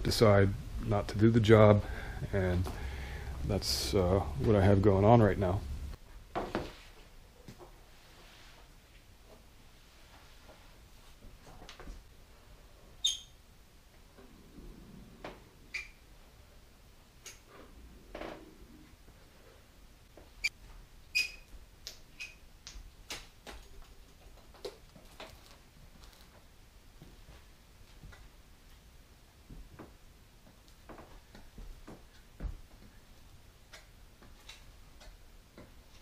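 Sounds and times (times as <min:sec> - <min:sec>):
caulking gun squeaks: 0:21.2 - 0:21.5.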